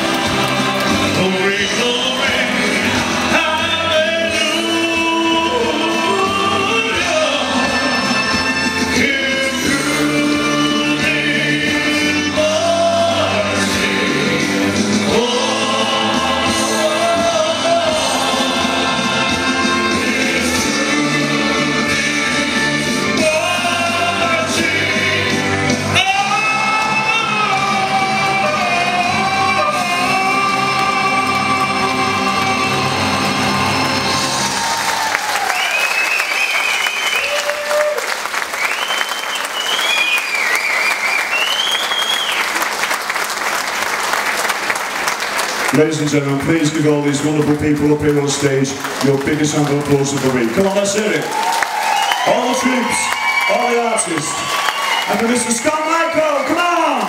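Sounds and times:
band and singers performing: 0.0s - 42.6s, 45.4s - 57.0s
crowd applauding and cheering: 0.0s - 57.0s.

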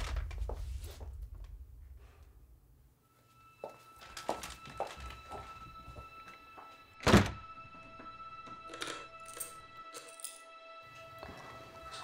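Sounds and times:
footsteps walking: 0.2s - 1.6s, 3.2s - 6.8s
tense music with held tone: 1.0s - 12.0s
door shutting with a thud: 7.0s - 7.4s.

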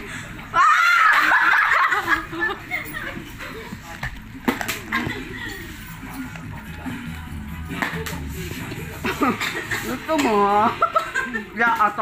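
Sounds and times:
background music: 1.5s - 12.0s.

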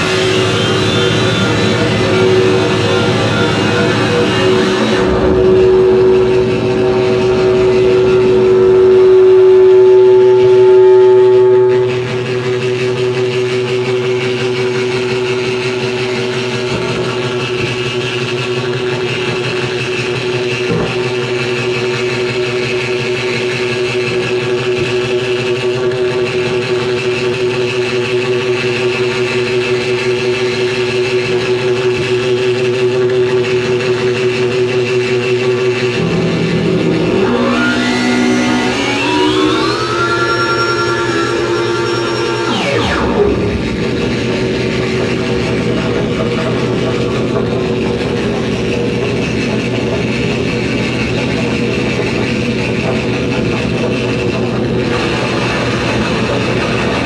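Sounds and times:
fast-pulsing buzzing drone: 0.0s - 57.0s
loud steady droning tone: 0.0s - 57.0s.

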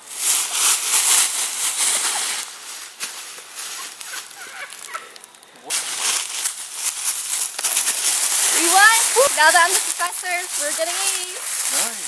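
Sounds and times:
dry leaves rustling and crunching: 0.0s - 12.0s.

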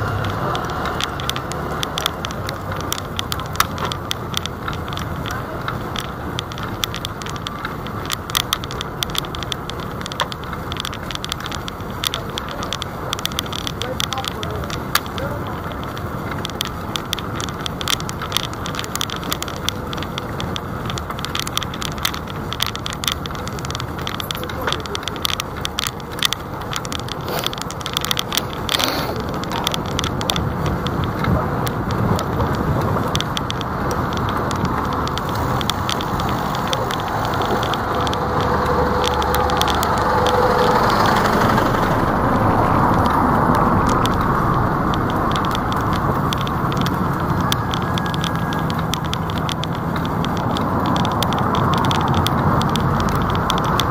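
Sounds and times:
city road traffic: 0.0s - 53.9s
rapid clicking and rattling: 0.0s - 53.9s
bus passing close: 28.6s - 53.9s.

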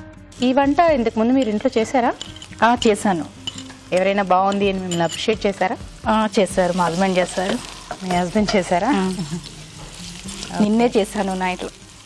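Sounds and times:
onions frying in oil: 0.3s - 12.0s
woman talking: 10.5s - 11.7s.

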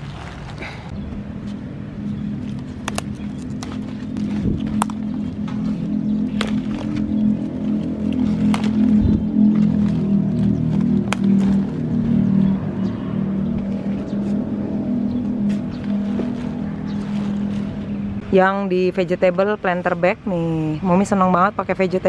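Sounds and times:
leaves rustling: 0.0s - 0.9s, 1.5s - 12.8s, 13.4s - 18.2s
motor droning: 0.6s - 20.4s
leaf stalks snapping: 2.4s - 12.0s.

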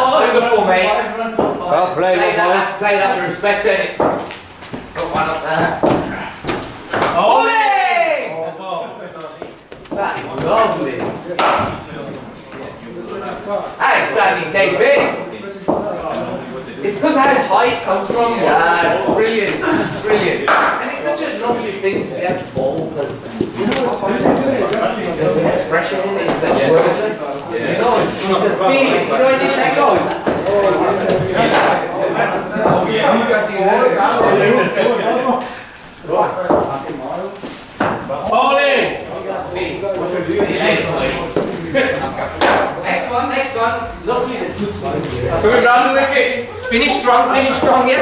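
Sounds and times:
men talking: 0.0s - 48.0s
cricket bat hitting ball: 20.4s - 20.8s, 42.4s - 42.8s
cricket bat striking ball: 20.5s - 20.8s.

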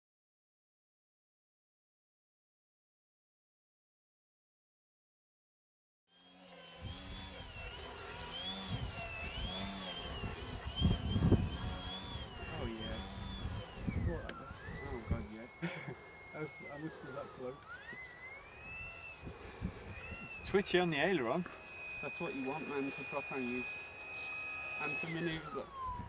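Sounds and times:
electric motor and propeller whining: 6.1s - 26.0s
wind buffeting microphone: 8.6s - 15.4s, 18.6s - 20.8s.

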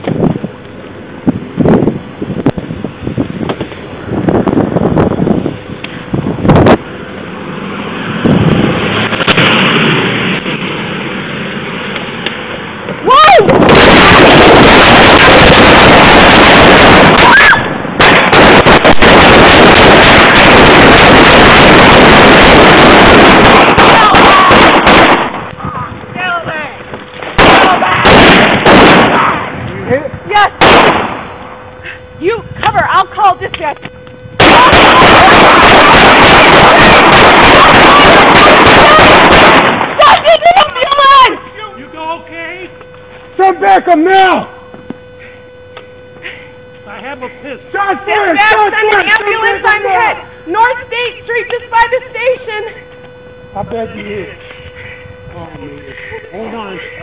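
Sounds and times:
heavy gunfire: 13.5s - 25.5s, 27.2s - 29.6s, 30.6s - 31.4s, 34.4s - 40.3s.

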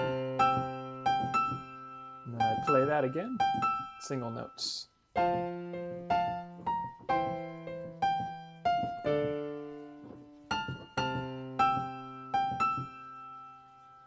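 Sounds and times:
slow piano passage: 0.0s - 14.0s.

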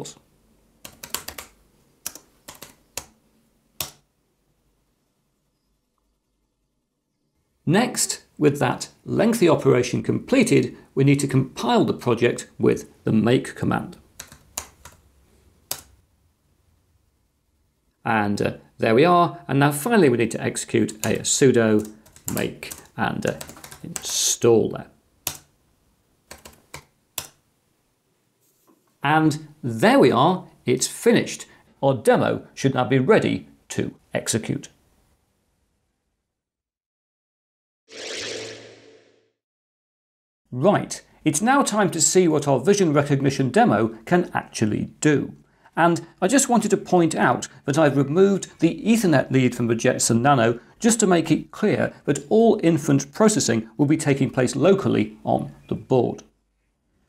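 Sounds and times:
computer keyboard key clicks: 0.8s - 3.2s, 25.3s - 25.5s
typing on computer keyboard: 0.8s - 3.2s, 14.2s - 15.0s, 21.8s - 24.1s, 26.3s - 27.4s.

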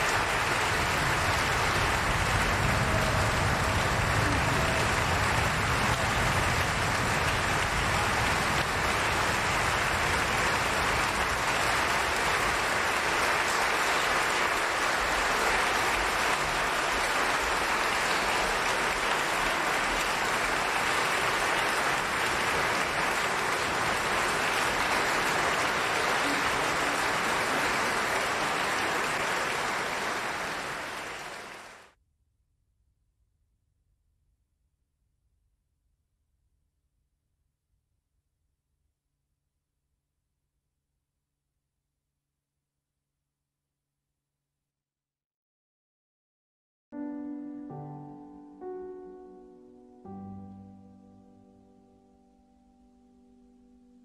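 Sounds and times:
audience applauding: 0.0s - 32.0s.

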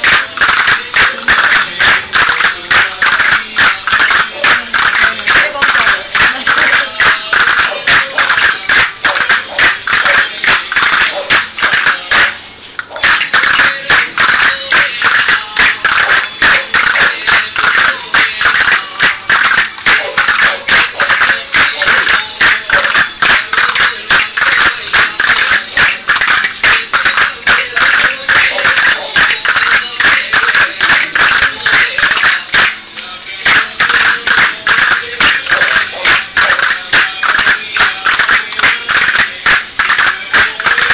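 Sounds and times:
lively folk dance music: 0.0s - 40.9s.

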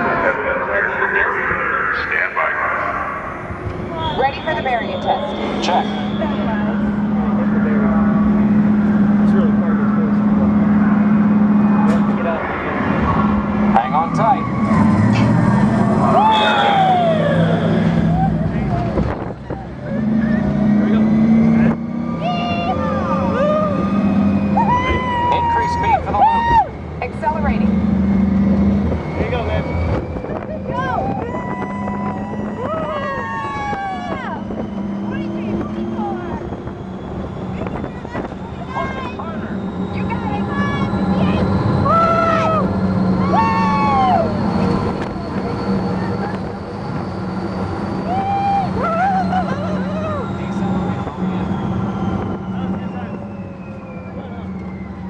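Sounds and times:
ride vehicle rumble and whine: 0.0s - 55.0s
riders cheering and whooping: 13.8s - 20.5s, 22.0s - 26.8s, 30.6s - 36.6s, 40.3s - 46.8s, 47.8s - 53.3s.

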